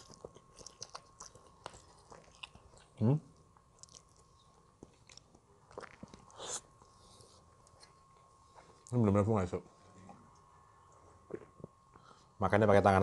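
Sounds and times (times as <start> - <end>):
man chewing food: 0.0 - 8.9, 10.1 - 12.2.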